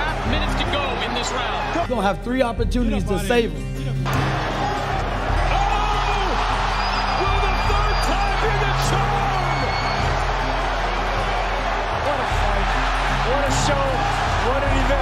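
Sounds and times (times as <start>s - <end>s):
crowd shouting and cheering: 0.0s - 2.0s, 4.0s - 15.0s
background music with bass line: 0.0s - 15.0s.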